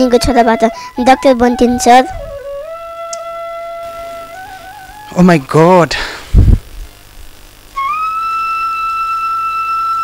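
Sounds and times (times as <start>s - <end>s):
flute holding high note: 0.0s - 5.2s, 7.8s - 10.0s.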